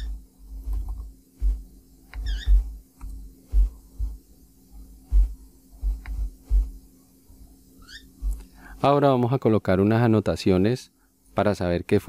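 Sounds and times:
faint electrical hum: 0.0s - 12.0s
mouse clicks: 2.1s - 3.2s.

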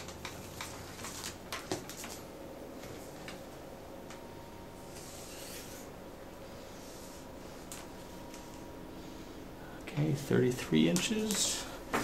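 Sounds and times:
cord and tape rustling: 0.0s - 4.2s, 6.7s - 8.7s, 10.7s - 12.0s
faint room hum: 0.0s - 12.0s.

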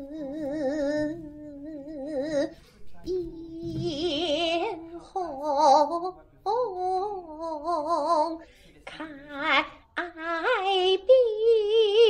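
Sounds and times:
person singing long held notes: 0.0s - 8.4s.

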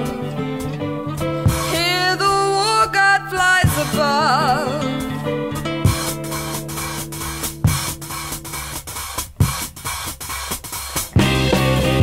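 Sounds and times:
electric guitars and bass chord: 0.0s - 2.0s, 3.6s - 8.9s, 11.2s - 12.0s
rock drum kit with cymbals: 0.0s - 2.0s, 3.6s - 4.1s, 5.6s - 12.0s.

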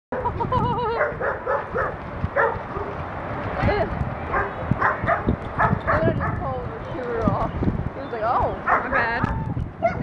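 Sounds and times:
dog barking: 1.0s - 3.0s, 4.3s - 6.4s, 8.6s - 10.0s.

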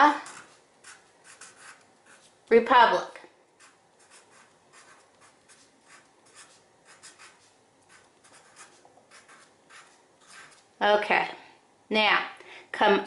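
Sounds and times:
marker scratching on paper: 0.1s - 2.4s, 3.6s - 10.7s.

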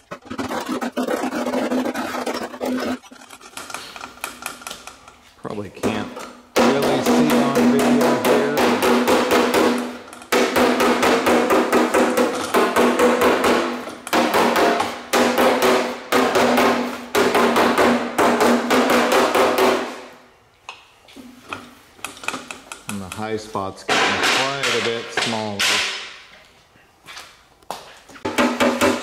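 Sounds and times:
hammer striking sheet steel: 6.6s - 20.1s, 23.9s - 26.2s.

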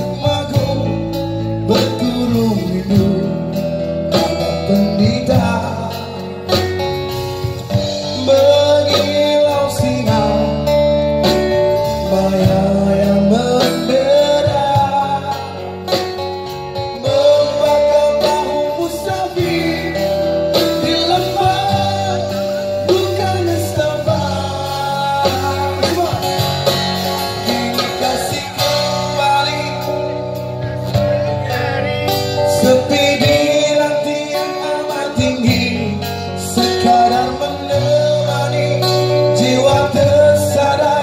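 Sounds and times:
acoustic guitar through speakers: 0.0s - 41.0s
person singing: 0.0s - 41.0s.

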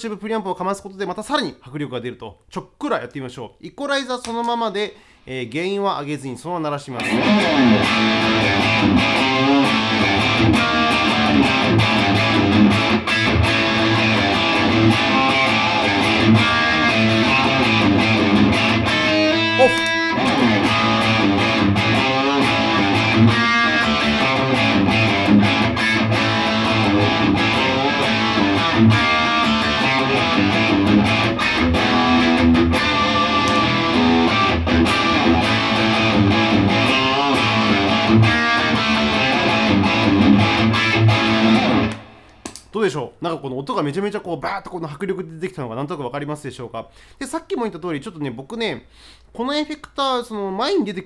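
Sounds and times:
heavily distorted electric guitar: 7.0s - 42.4s.

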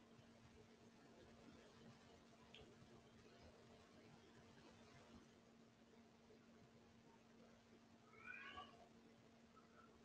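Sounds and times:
steady low hum: 0.0s - 8.1s
faint pitched call: 8.0s - 8.9s.

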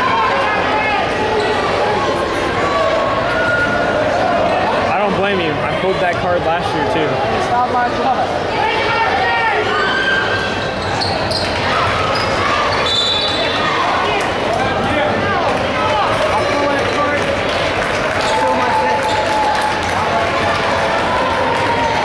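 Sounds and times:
crowd chatter: 0.0s - 22.0s.

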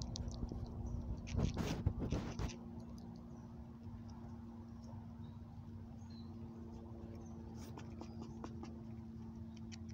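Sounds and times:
squirrel gnawing and nibbling: 0.0s - 9.9s
steady low hum: 0.0s - 9.9s.

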